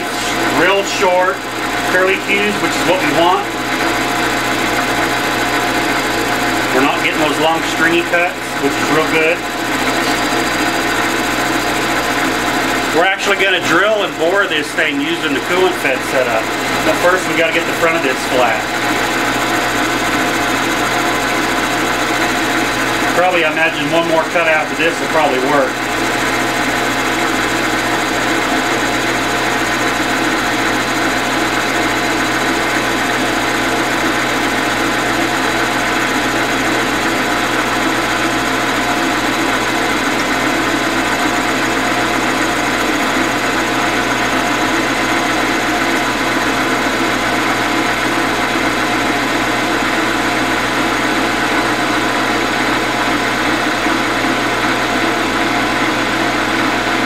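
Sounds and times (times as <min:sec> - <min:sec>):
metal lathe humming and whining: 0:00.0 - 0:57.0.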